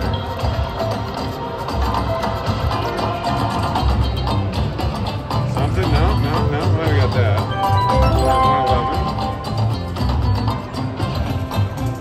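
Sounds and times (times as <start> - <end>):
looping slot machine music: 7.4 - 10.3.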